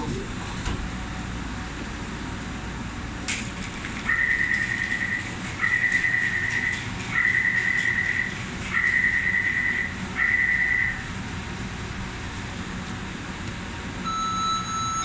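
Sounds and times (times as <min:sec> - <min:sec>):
door warning buzzer beeps: 0:14.0 - 0:15.0.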